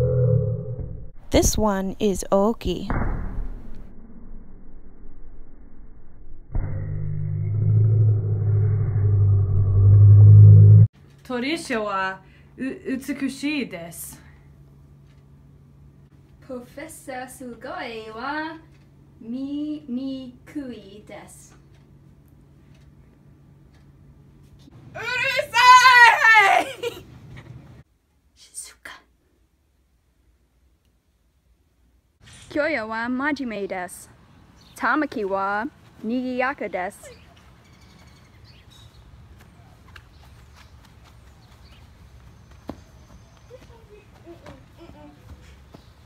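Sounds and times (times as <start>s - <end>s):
loud low rumble: 2.9s - 10.9s
faint room hum: 11.0s - 46.0s.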